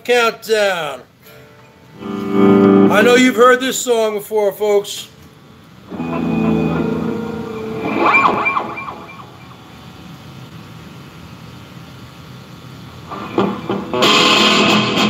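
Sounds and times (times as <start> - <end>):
electric guitar chords: 1.2 - 3.4, 5.8 - 10.5, 13.0 - 15.0
wavering high guitar note: 1.3 - 3.4, 5.9 - 10.4
amp low hum: 1.8 - 3.6, 5.1 - 15.0.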